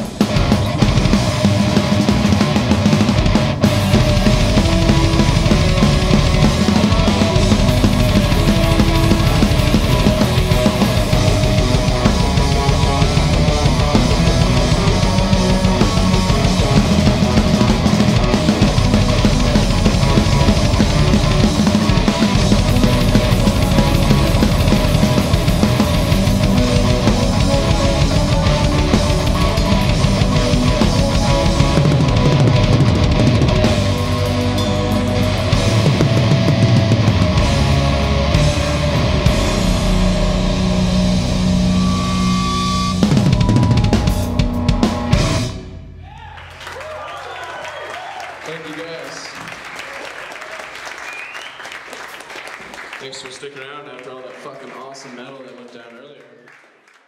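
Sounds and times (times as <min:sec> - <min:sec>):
fast drum kit with cymbals: 0:00.0 - 0:45.8
distorted electric guitar: 0:00.0 - 0:46.0.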